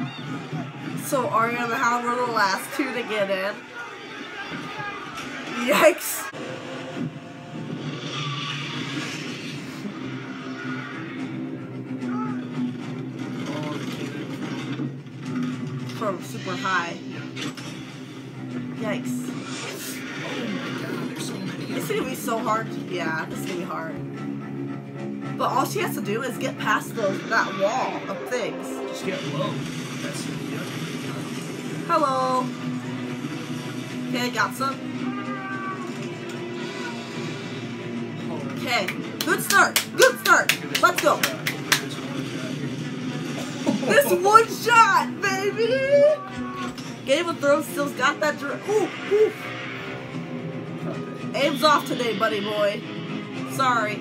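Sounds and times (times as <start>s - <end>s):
battle scene soundtrack: 0.0s - 54.0s
high cat-like creature screech: 8.0s - 11.4s, 34.9s - 37.3s.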